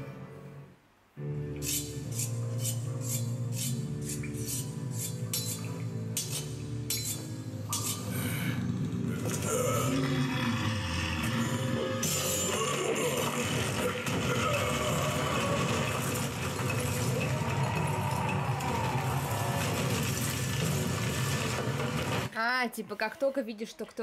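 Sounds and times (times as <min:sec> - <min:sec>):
dramatic background music: 0:01.2 - 0:22.3
falling rock rumble: 0:12.9 - 0:22.3.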